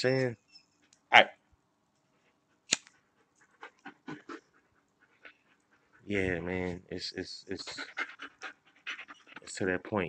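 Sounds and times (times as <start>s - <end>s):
faint quick panting: 3.1s - 9.6s.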